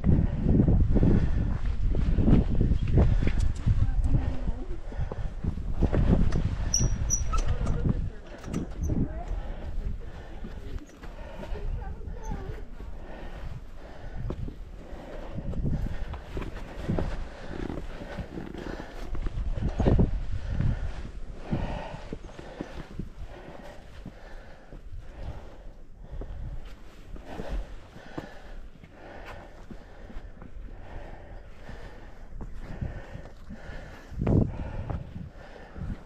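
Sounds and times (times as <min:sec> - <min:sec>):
wind rumbling on microphone: 0:00.0 - 0:36.0
indistinct voices: 0:06.8 - 0:14.2.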